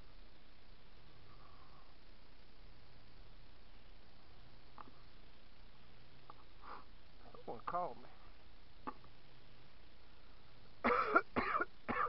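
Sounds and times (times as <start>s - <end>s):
man coughing: 10.8s - 12.0s.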